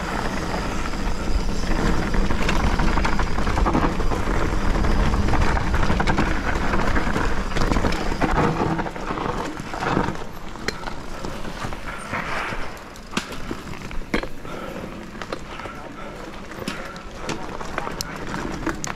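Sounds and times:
wind rumble on camera: 0:00.0 - 0:14.2
bike rattling over bumps: 0:00.0 - 0:18.9
bike tyre noise on dirt: 0:00.0 - 0:18.9.

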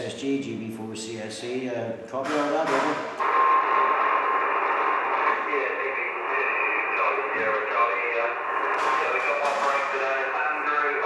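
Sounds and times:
muffled radio voice: 0:02.7 - 0:11.0
radio static: 0:02.7 - 0:11.0.

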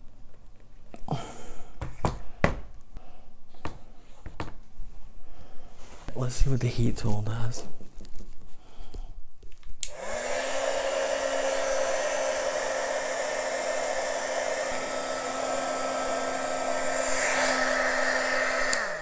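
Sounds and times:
heat gun switch click: 0:09.8 - 0:10.0, 0:18.7 - 0:18.9
heat gun fan hum: 0:09.8 - 0:19.0
rush of blown air: 0:09.9 - 0:19.0.

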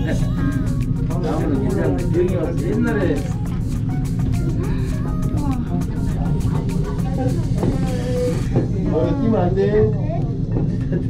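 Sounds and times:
music with sharp regular beat: 0:00.0 - 0:08.8
voices talking: 0:00.0 - 0:10.5
cable car cabin hum: 0:00.0 - 0:11.0.

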